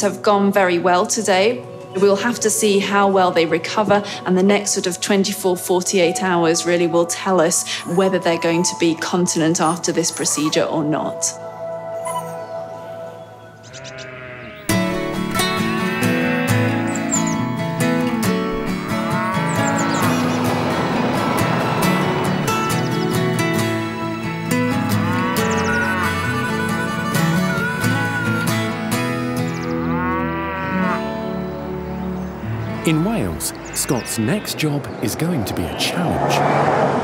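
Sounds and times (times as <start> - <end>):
quiet background music: 0.0 - 26.5, 28.9 - 35.2
sheep bleating: 13.6 - 23.2, 24.8 - 31.4
cow mooing: 13.6 - 34.6
strummed acoustic guitar music: 14.7 - 33.6.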